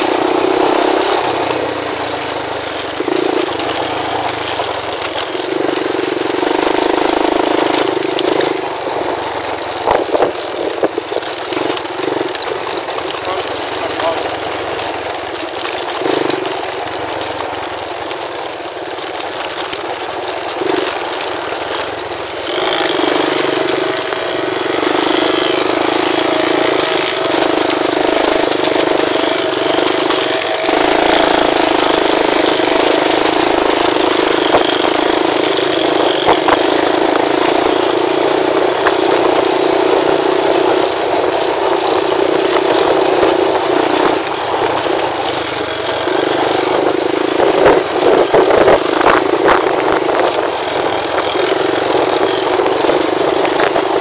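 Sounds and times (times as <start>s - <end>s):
quad bike engine running: 0.0s - 54.0s.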